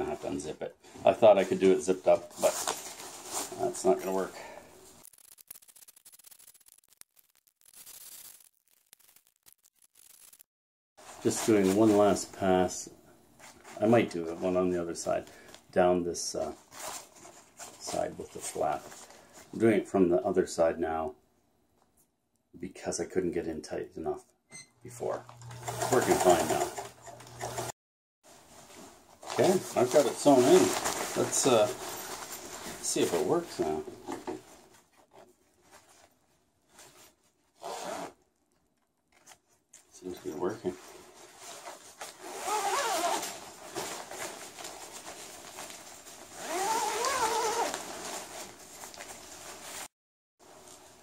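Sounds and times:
tent zipper being pulled: 5.0 - 10.5, 37.6 - 38.2, 41.6 - 43.9, 46.3 - 48.2.

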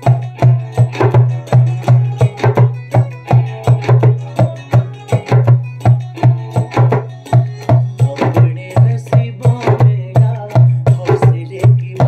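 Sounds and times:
djembe played by hand: 0.0 - 12.0.

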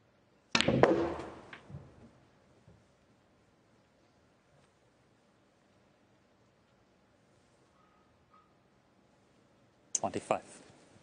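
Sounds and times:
balls knocking: 0.6 - 2.0.

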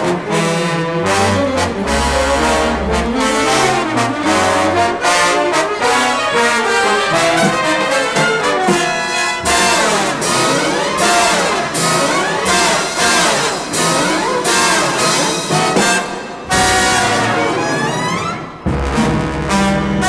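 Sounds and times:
jazz orchestra playing: 0.0 - 20.0
trombones and trumpets: 0.0 - 20.0
low bass notes: 1.2 - 4.7.

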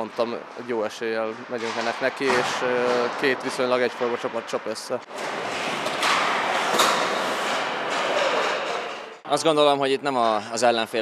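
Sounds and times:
skates scraping on ice: 5.1 - 8.8.

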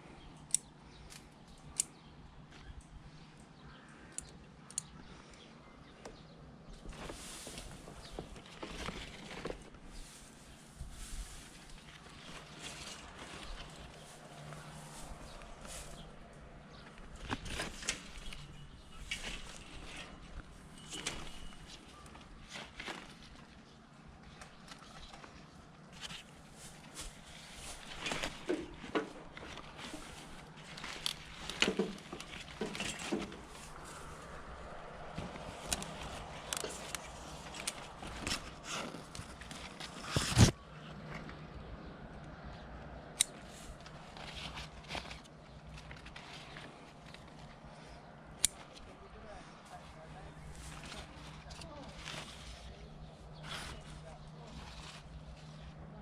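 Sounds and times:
leaves rustling and snapping: 6.8 - 40.6, 43.1 - 49.1, 50.0 - 55.6
pruning shears clicking: 43.2 - 44.0, 48.4 - 48.9.

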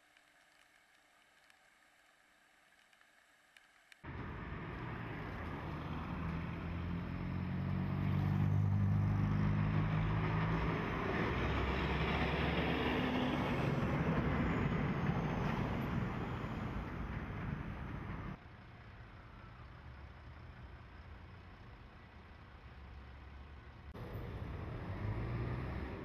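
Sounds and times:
cars driving past: 4.0 - 26.0
heavy truck engine passing: 4.1 - 26.0.

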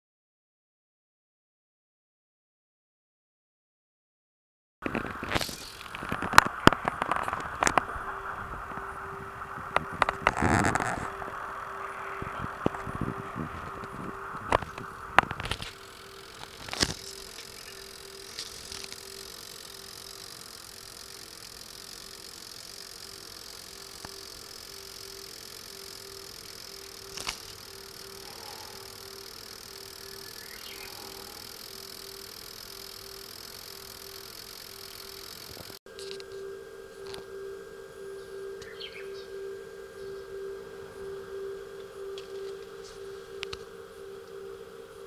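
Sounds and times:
electrical hum with pulsing tone: 4.8 - 45.0
thin high whine: 4.8 - 45.0.

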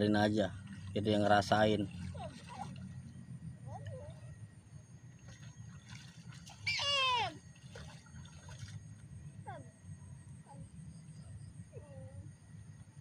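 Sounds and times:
water sloshing faintly: 0.0 - 13.0.

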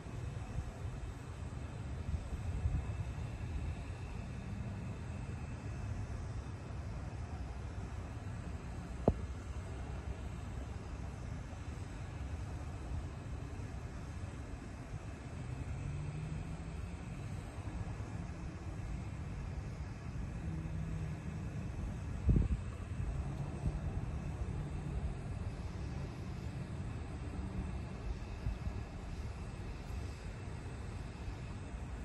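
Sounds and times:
distant engines rumbling: 0.0 - 32.0
faint humming tones: 0.0 - 32.0.

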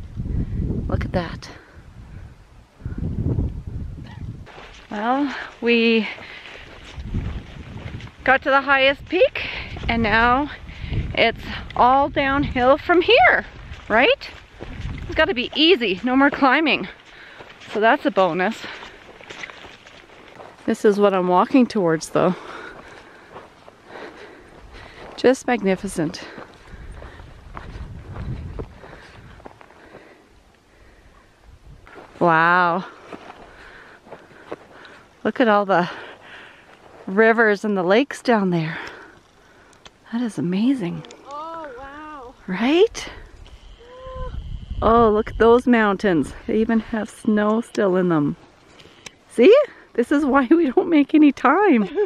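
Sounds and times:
wind buffeting microphone: 0.0 - 34.5, 40.8 - 47.2
footsteps on dirt trail: 3.4 - 52.0.

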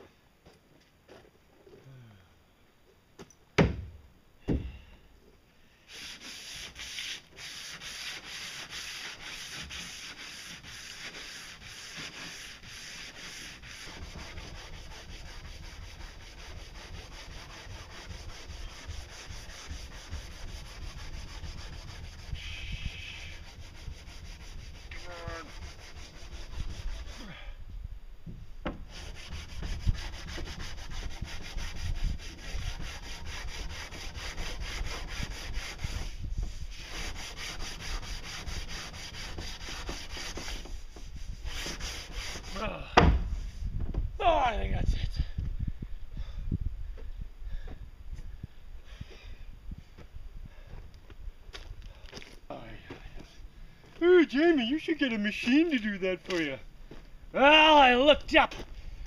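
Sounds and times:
sandpaper rasping on hull: 5.9 - 27.4, 28.7 - 42.7.

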